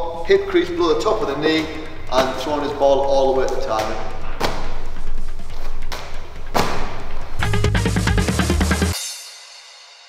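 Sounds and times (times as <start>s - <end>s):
background music: 0.0s - 10.0s
medicine ball thudding against wall: 4.4s - 4.8s, 5.9s - 7.1s
deep heavy bass beat: 7.4s - 9.0s.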